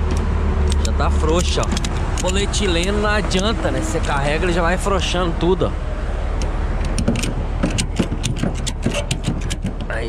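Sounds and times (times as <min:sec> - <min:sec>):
ratchet strap clicking: 0:00.0 - 0:03.0, 0:06.4 - 0:09.9
steady low rumble: 0:00.0 - 0:10.0.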